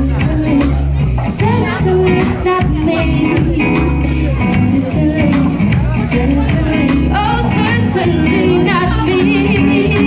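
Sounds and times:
live band playing: 0.0 - 10.0
person singing: 0.0 - 10.0.

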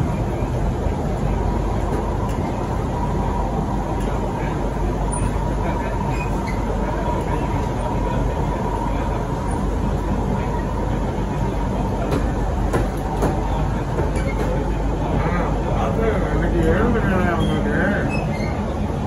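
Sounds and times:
train wheels rumbling on track: 0.0 - 19.0.

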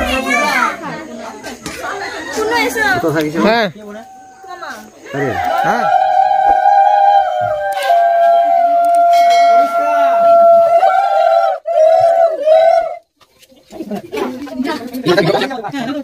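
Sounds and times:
women ululating: 4.0 - 13.1.

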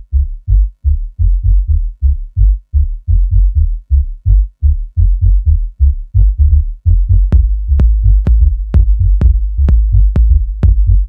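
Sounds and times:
deep synth bass notes: 0.0 - 11.0.

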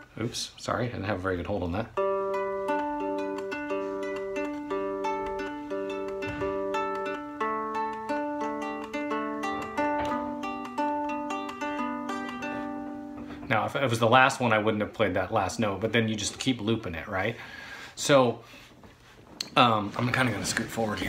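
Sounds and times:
fingerpicked three-string guitar: 1.9 - 16.9.

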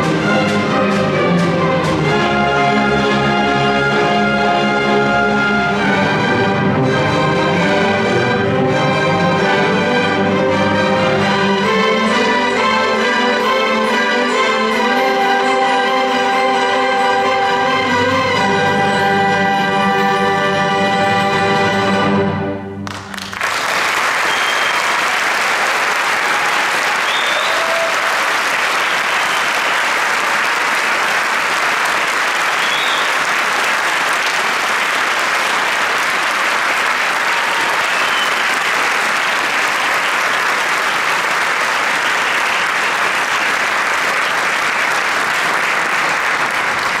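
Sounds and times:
audience applauding: 22.8 - 47.0.

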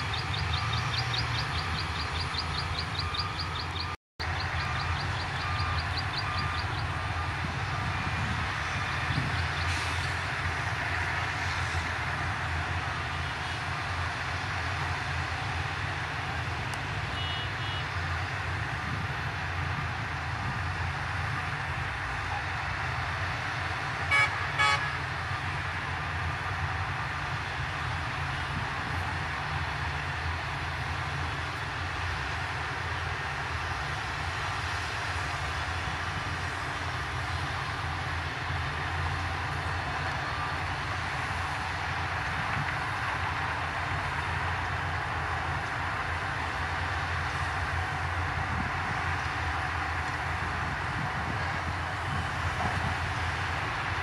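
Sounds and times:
bulldozer diesel engine rumbling: 0.0 - 54.0
vehicle horn toots: 17.1 - 17.9, 24.1 - 25.0.

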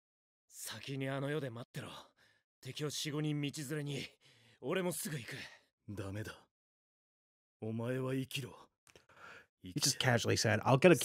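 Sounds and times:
man speaking: 2.6 - 6.5, 7.6 - 8.6, 9.6 - 11.0.

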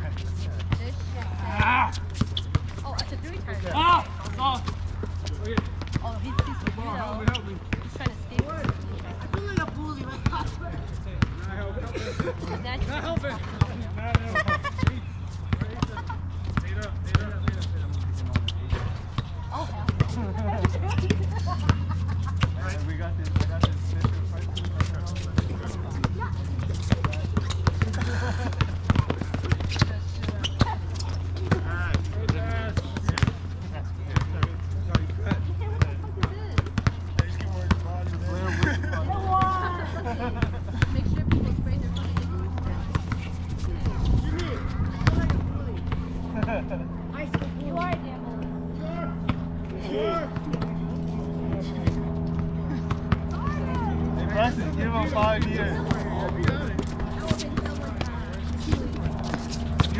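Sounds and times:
players' voices calling: 0.0 - 59.9
basketball bouncing on hard court: 23.2 - 33.4, 34.1 - 37.9, 45.0 - 45.5.

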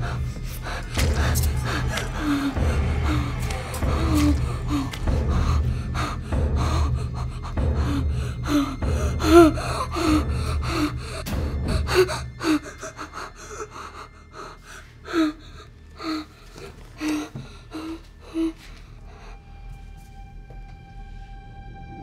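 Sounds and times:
low rumble: 0.0 - 16.5
boy gasping breaths: 0.0 - 19.5.

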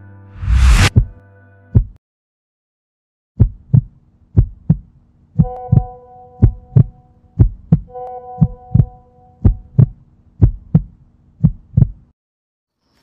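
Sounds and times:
heartbeat thumps: 1.8 - 2.0, 3.4 - 12.1
low steady hum: 3.6 - 11.9.

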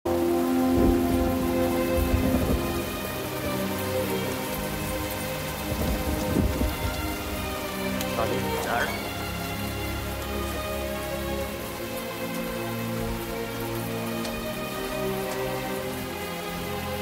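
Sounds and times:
low rolls of thunder: 0.1 - 9.2
film score held notes: 0.1 - 17.0
steady rain: 0.1 - 17.0.

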